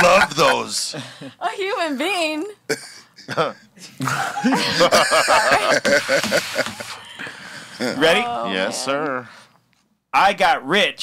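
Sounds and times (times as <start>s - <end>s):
people chattering: 0.0s - 0.7s
people laughing: 0.0s - 1.4s, 3.2s - 8.4s.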